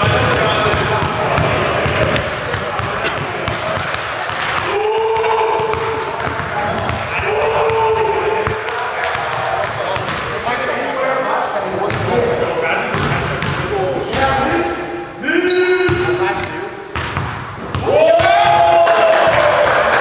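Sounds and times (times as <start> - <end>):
people's voices in gym: 0.0 - 20.0.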